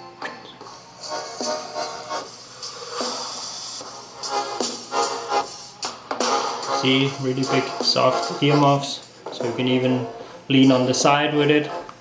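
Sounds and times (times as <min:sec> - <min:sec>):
music from headphone speakers: 0:00.0 - 0:12.0.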